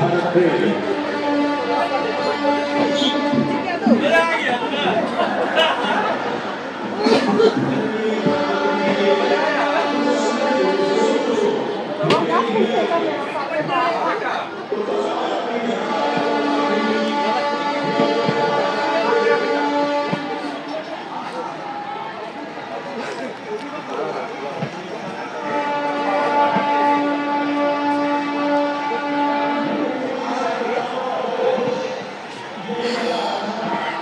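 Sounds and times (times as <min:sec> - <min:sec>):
train horn blasts: 0:00.0 - 0:04.1, 0:15.6 - 0:20.8, 0:25.0 - 0:32.6
crowd voices on platform: 0:00.0 - 0:34.0.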